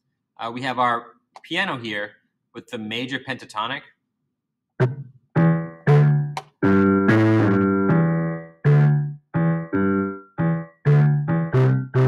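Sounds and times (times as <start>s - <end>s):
piano notes: 4.8s - 12.0s.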